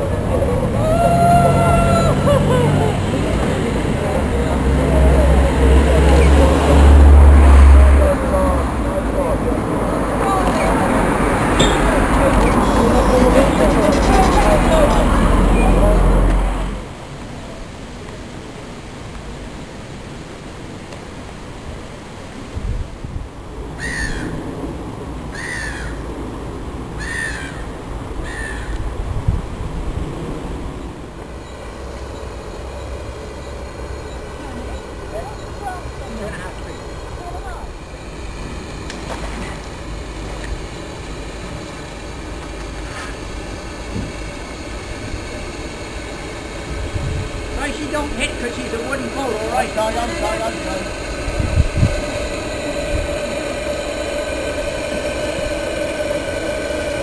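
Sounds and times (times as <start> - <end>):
outdoor background noise: 0.0 - 57.0
bird calling: 10.2 - 15.8.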